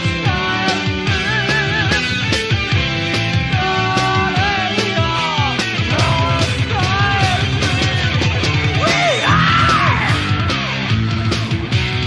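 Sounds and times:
heavy metal band playing: 0.0 - 12.0
high lead guitar line: 0.0 - 12.0.

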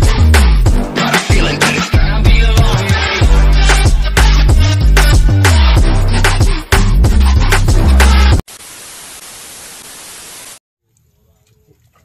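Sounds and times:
music with heavy bass beat: 0.0 - 8.4
tv static hiss: 8.5 - 10.6.

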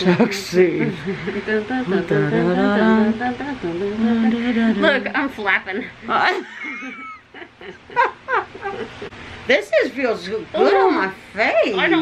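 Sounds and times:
woman giggling and squealing: 6.4 - 9.1.

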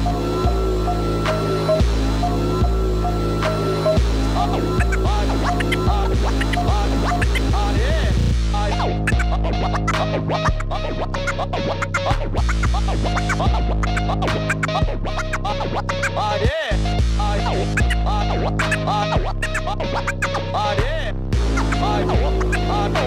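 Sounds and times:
hip-hop beat with heavy bass: 0.0 - 23.0
turntable scratching: 3.4 - 16.5, 17.2 - 20.4, 21.4 - 23.0.

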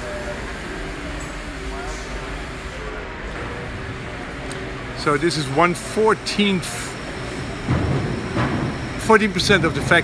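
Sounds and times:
low factory rumble: 0.0 - 10.0.

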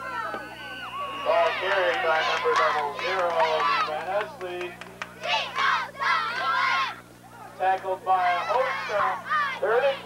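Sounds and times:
high-pitched voices shouting: 5.2 - 7.5, 8.4 - 10.0.

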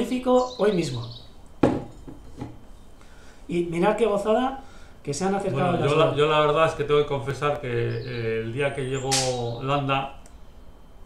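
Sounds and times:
object knocking on hard surface: 1.6 - 2.6.

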